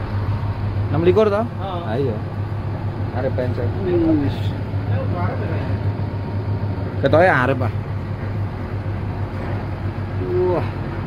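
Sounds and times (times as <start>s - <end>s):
bus diesel engine humming: 0.0s - 11.0s.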